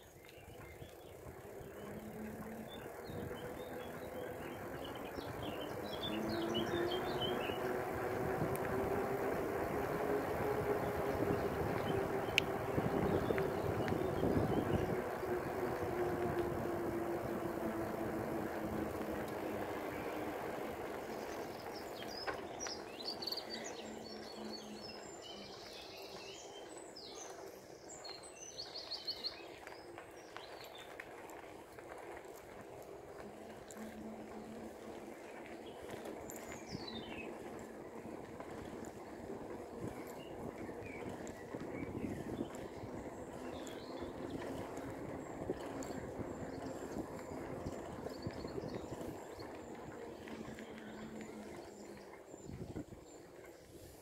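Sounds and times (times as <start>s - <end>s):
bicycle tyres rushing on tarmac: 0.0s - 54.0s
birds chirping: 0.0s - 54.0s
wind on microphone: 0.5s - 21.8s, 38.4s - 54.0s.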